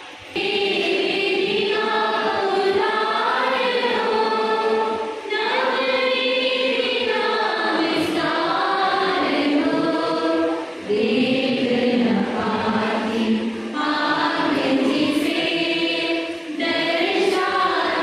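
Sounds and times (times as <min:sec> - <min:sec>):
choir singing a hymn: 0:00.0 - 0:18.0.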